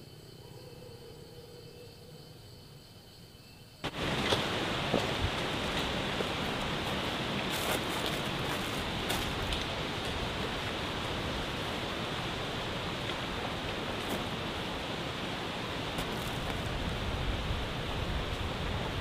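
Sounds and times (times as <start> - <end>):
wind through trees: 0.0 - 19.0
dry leaves crackling: 3.9 - 11.4, 13.0 - 17.4.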